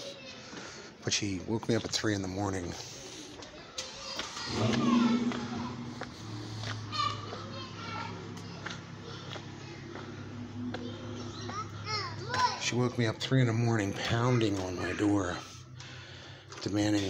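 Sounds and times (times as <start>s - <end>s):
children playing and calling out: 0.0s - 1.0s, 2.8s - 16.6s
steady low hum: 4.5s - 14.1s.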